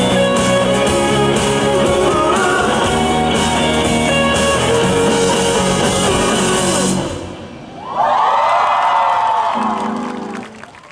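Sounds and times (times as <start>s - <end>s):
live rock band playing: 0.0s - 7.6s
audience cheering and screaming: 7.7s - 10.9s.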